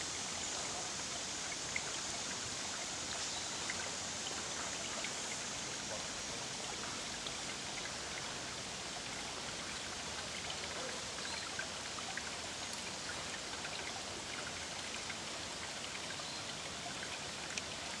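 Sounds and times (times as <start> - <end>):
creek water rushing: 0.0 - 18.0.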